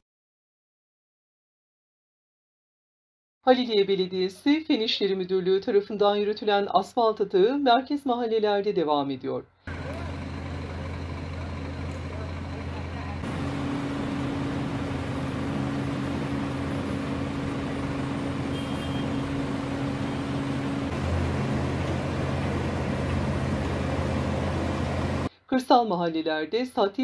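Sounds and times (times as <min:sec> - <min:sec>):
heavy diesel engines running: 0:09.7 - 0:25.3
steady hum: 0:12.2 - 0:25.3.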